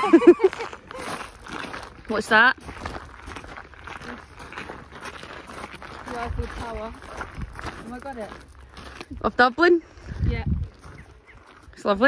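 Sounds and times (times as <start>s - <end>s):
footsteps crunching on gravel: 0.2s - 12.0s.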